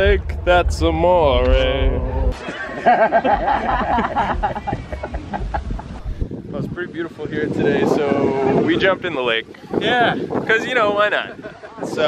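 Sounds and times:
high-pitched laughing or whooping: 0:02.3 - 0:06.0.

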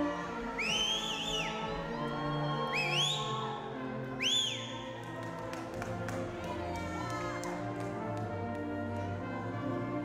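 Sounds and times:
orchestral background music: 0:00.0 - 0:10.0
high sliding whistles: 0:00.6 - 0:01.7.

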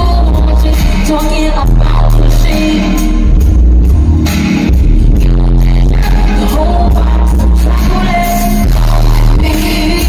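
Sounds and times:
heavy bass: 0:00.0 - 0:10.0
live r and b concert music: 0:00.0 - 0:10.0.

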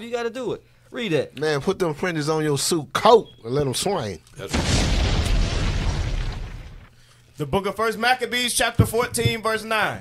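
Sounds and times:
explosion boom: 0:04.5 - 0:06.9.

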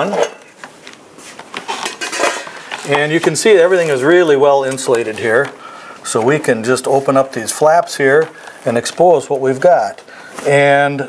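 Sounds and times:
sheet metal scrape: 0:01.6 - 0:04.0.

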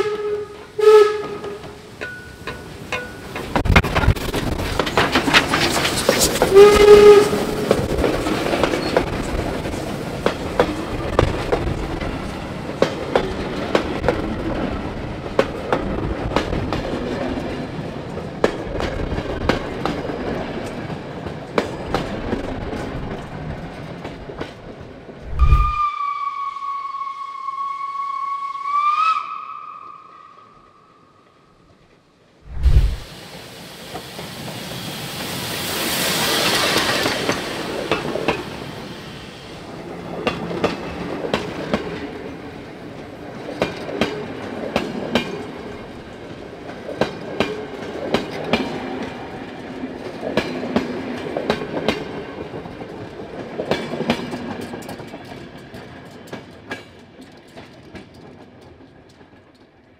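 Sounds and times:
locomotive whistle blast: 0:00.0 - 0:01.7, 0:06.5 - 0:07.7, 0:25.4 - 0:30.8
steam whistle blast: 0:00.0 - 0:01.7, 0:06.5 - 0:07.7, 0:25.3 - 0:30.8
train wheels clicking on rails: 0:01.3 - 0:25.2, 0:32.7 - 0:59.9.

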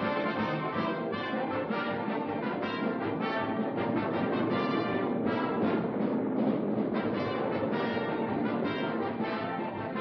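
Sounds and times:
orchestral brass: 0:00.0 - 0:10.0
timpani: 0:00.0 - 0:10.0.

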